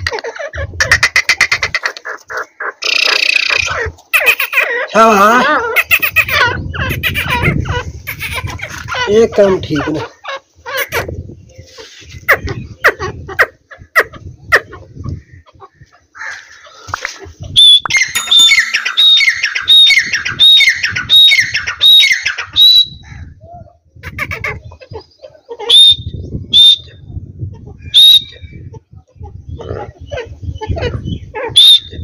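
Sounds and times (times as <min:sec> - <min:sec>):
francolin calling: 0:17.6 - 0:23.0, 0:27.9 - 0:28.5.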